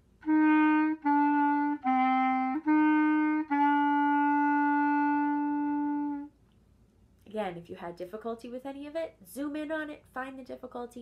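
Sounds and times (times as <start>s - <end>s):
solo clarinet playing: 0.2s - 6.4s.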